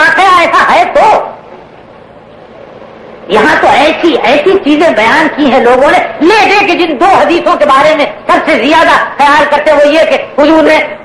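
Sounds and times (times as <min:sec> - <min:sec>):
faint recording hiss: 0:00.0 - 0:11.0.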